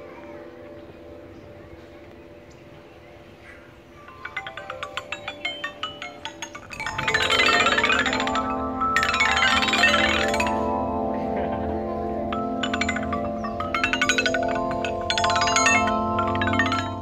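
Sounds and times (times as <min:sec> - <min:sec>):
metal chime tubes struck with mallets: 0:04.0 - 0:17.0.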